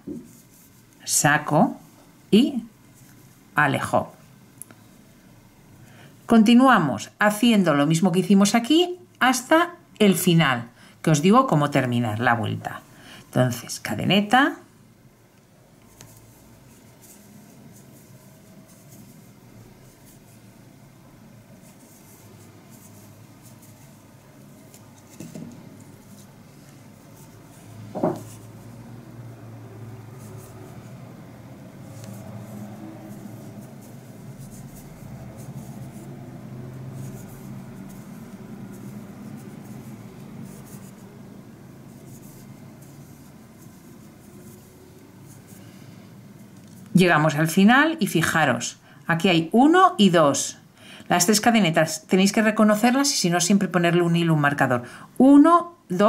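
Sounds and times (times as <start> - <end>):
yarn rubbing and rustling: 0.0 - 4.3, 15.7 - 48.6.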